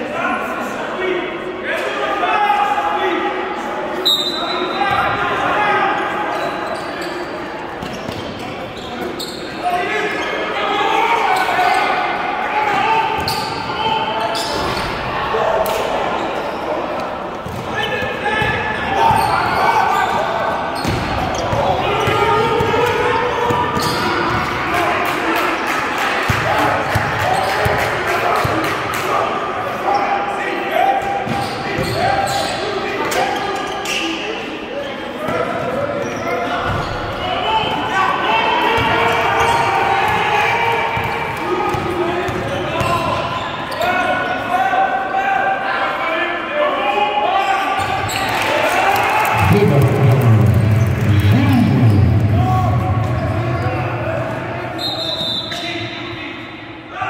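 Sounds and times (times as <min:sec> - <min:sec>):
players calling out: 0:04.2 - 0:34.0, 0:47.5 - 0:56.1.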